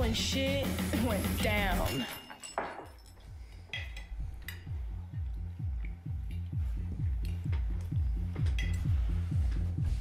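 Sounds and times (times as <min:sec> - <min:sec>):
cutlery and glasses clinking: 0:01.8 - 0:04.8, 0:08.4 - 0:09.1
electronic beat with kick drum: 0:04.2 - 0:10.0.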